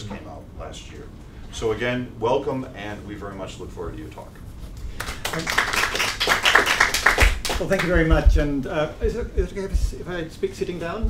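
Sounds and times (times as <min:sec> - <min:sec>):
audience applauding: 0:04.9 - 0:08.0.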